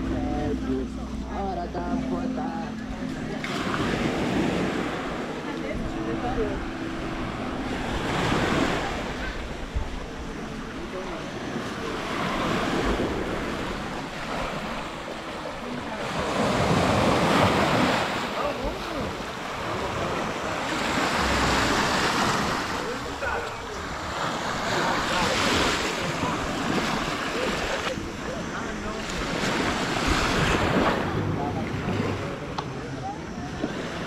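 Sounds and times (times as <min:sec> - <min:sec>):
small waves breaking on beach: 0:03.5 - 0:32.5.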